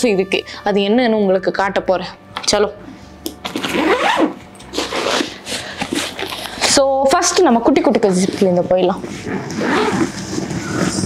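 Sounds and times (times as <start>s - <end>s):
zipper on canvas bag: 3.5s - 6.7s, 9.0s - 11.0s.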